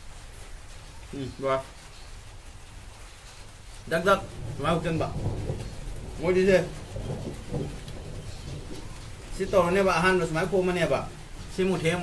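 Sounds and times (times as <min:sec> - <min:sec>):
low rumbling background noise: 0:00.0 - 0:12.0.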